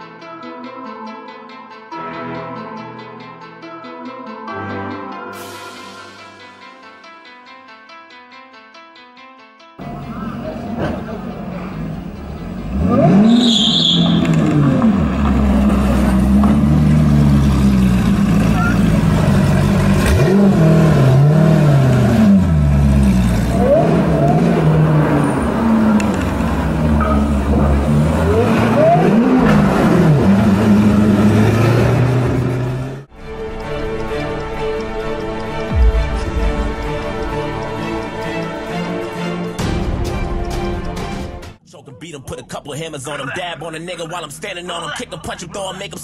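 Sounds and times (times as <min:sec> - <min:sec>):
car engine revving hard: 0:12.5 - 0:33.1.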